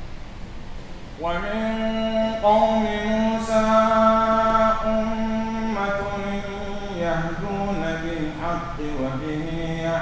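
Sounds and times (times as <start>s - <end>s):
man chanting melodically: 1.2s - 10.0s.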